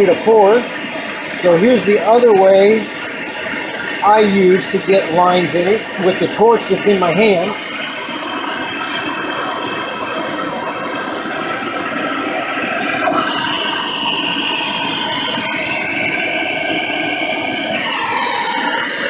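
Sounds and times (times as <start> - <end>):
torch flame hissing: 0.0 - 19.0
high whistle-like tone: 17.7 - 19.0.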